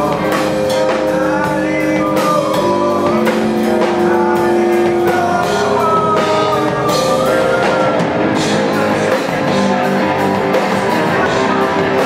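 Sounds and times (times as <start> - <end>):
electric guitar: 0.0 - 12.0.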